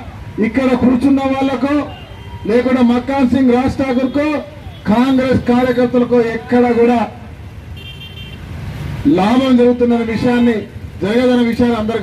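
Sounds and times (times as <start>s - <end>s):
vehicle horn toot: 7.8s - 8.4s.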